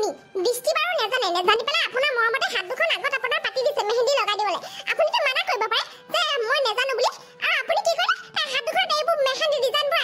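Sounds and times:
faint background music: 0:00.0 - 0:10.0
high-pitched cartoon voice talking: 0:00.0 - 0:10.0.

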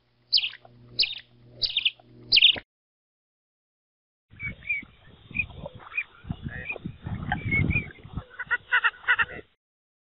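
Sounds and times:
bird chirping: 0:00.3 - 0:02.6, 0:04.3 - 0:08.0.

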